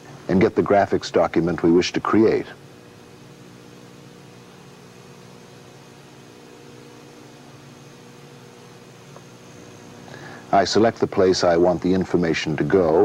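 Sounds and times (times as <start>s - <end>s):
faint hiss: 0.0s - 13.0s
low hum: 0.0s - 13.0s
thin high whine: 0.0s - 13.0s.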